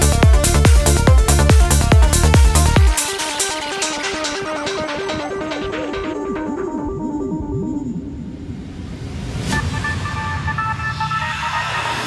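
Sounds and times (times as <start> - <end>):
held synth chord: 0.0 - 8.7
pulsing bass line: 0.0 - 8.9.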